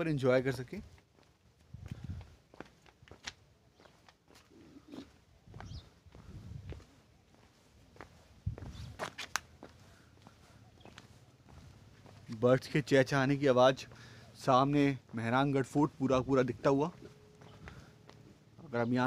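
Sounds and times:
footsteps on stone path: 0:00.1 - 0:18.9
faint bird chirps: 0:04.6 - 0:06.0, 0:10.3 - 0:11.3, 0:17.1 - 0:18.1.

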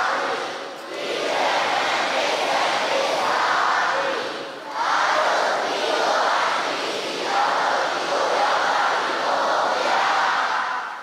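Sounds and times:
crowd chanting in unison: 0:00.0 - 0:11.0.

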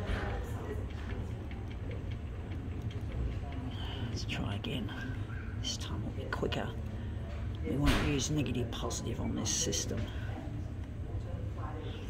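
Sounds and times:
low background hum: 0:00.0 - 0:12.0.

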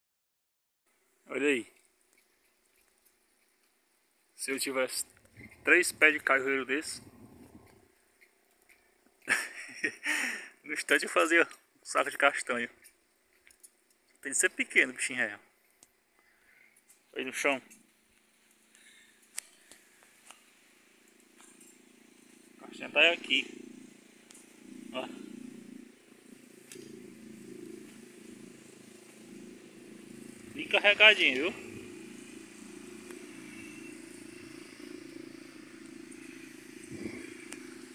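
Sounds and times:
tiny ticks: 0:01.7 - 0:04.4, 0:07.6 - 0:09.3, 0:12.8 - 0:14.3, 0:17.7 - 0:22.3, 0:37.4 - 0:37.7
engine humming: 0:01.8 - 0:37.9.

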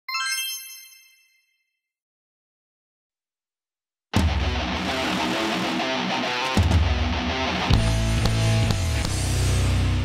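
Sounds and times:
bright electronic chime: 0:00.1 - 0:01.8.

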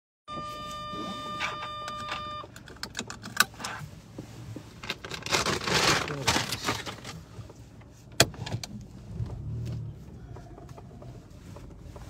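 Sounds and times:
seatbelt clicking and rustling: 0:01.4 - 0:03.9, 0:04.5 - 0:12.0.

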